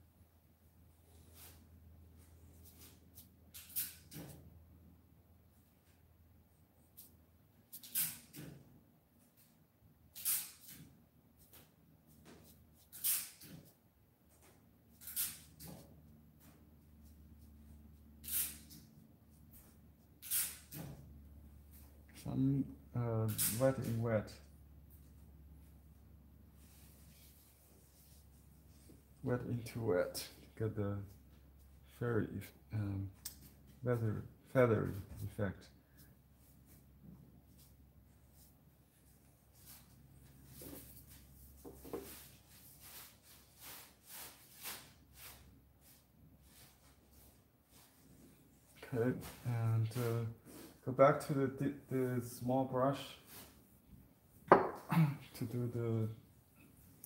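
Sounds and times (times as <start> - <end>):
faint room hum: 0.0 - 57.0
brush swishing on paper: 37.5 - 50.8.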